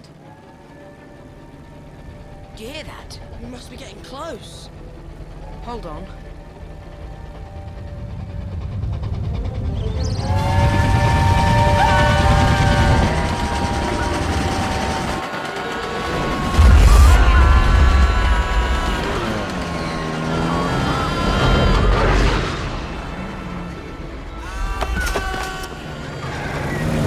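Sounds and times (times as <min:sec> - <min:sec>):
film score music: 0:00.0 - 0:27.0
train rumbling: 0:00.0 - 0:27.0
steam locomotive whistle: 0:09.7 - 0:23.0.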